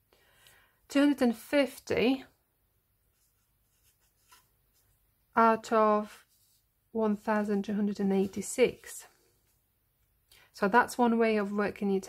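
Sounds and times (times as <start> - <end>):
marker pen writing: 3.1 - 4.5.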